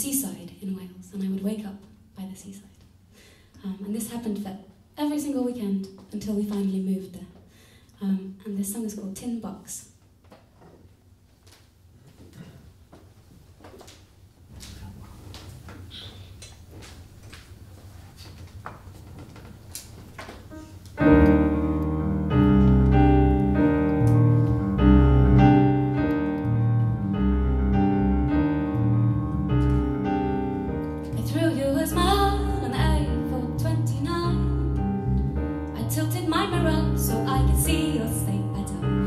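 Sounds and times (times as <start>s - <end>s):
keyboard piano chords: 20.5s - 39.0s.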